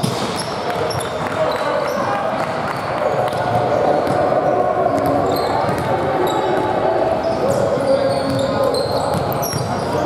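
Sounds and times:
echoing indistinct voices: 0.0s - 10.0s
sneakers squeaking: 0.0s - 10.0s.

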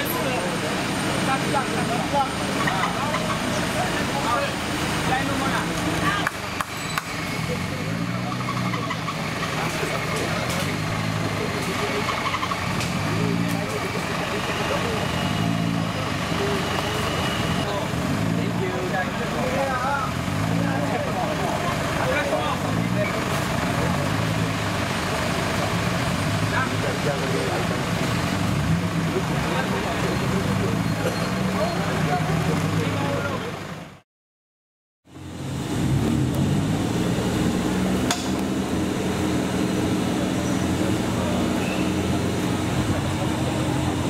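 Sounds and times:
off-road vehicle engine running: 0.0s - 34.0s, 35.1s - 44.0s.

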